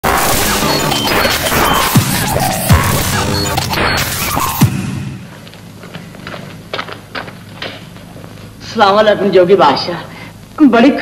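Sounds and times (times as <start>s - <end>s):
crashing sound effects: 0.0s - 5.3s
music intro sting: 0.0s - 5.3s.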